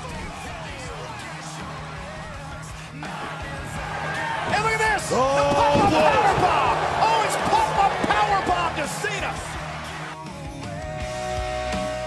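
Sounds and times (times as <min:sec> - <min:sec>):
excited shouting voices: 0:00.0 - 0:10.2.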